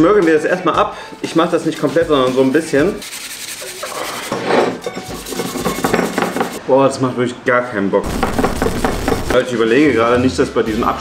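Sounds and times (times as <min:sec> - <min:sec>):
sandpaper rasping against metal can: 0:01.4 - 0:06.6.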